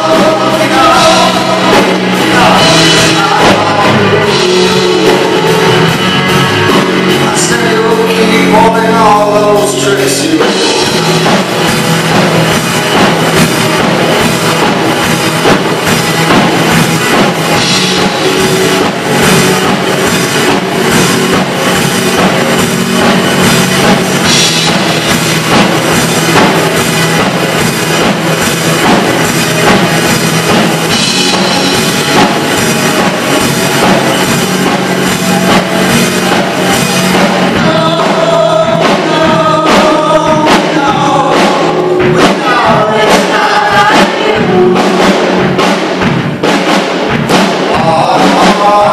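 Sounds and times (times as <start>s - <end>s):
person singing: 0.0s - 11.7s, 30.9s - 45.5s, 47.6s - 48.9s
steady drum beat: 0.0s - 48.9s
strummed acoustic guitar: 0.0s - 48.9s
sung harmonies: 0.0s - 48.9s.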